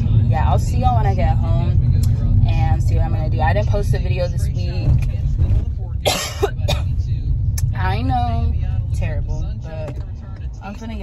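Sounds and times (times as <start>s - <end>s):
car road rumble: 0.0s - 11.0s
woman coughing: 6.0s - 7.0s.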